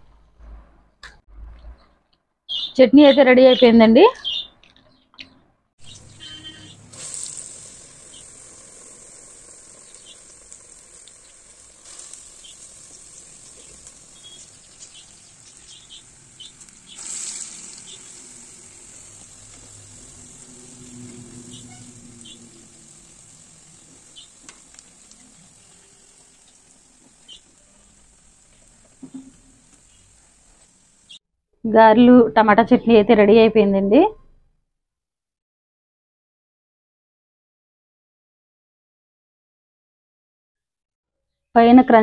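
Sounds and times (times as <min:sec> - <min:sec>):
food deep-frying in hot oil: 0:05.8 - 0:31.2.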